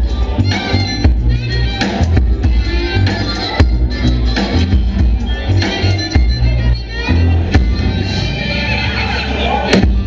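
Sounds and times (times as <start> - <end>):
acoustic band playing: 0.0 - 10.0.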